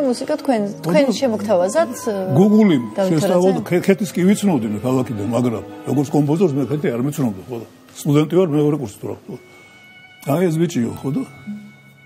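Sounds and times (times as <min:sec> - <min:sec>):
music accompaniment: 0:00.0 - 0:12.0.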